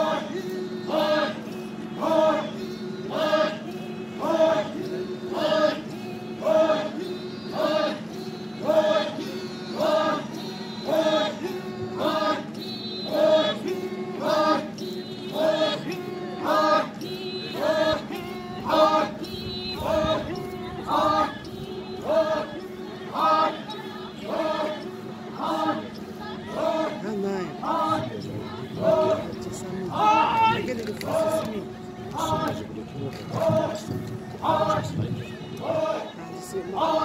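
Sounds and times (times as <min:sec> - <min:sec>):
people chanting in chorus: 0:00.0 - 0:37.0.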